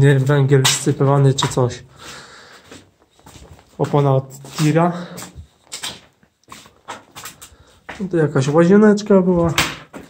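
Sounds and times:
footsteps scraping on gritty concrete: 0.0 - 8.6.

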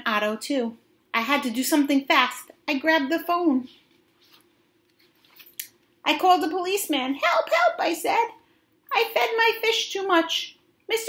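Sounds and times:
paper page rustling: 3.8 - 5.6
crisp page turn: 3.9 - 5.6.

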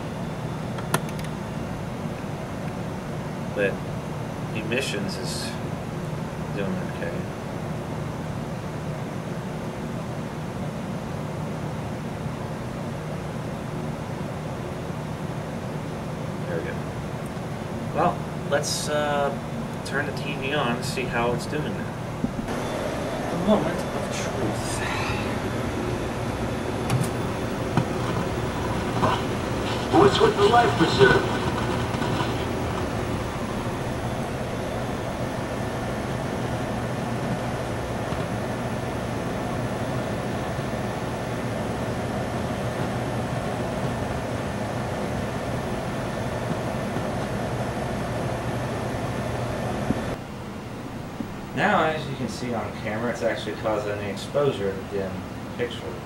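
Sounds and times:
low hum and hiss: 0.0 - 56.0
steady background noise: 0.0 - 56.0.

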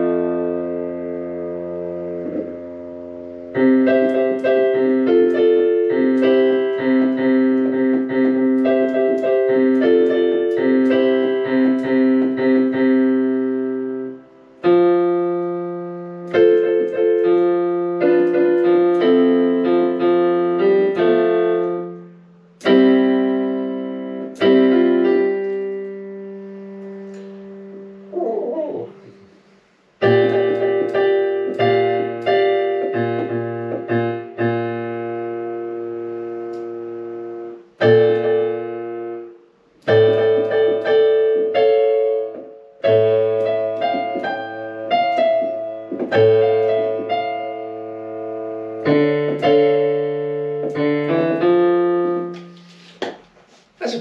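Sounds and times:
digital piano played slowly: 0.0 - 54.0.

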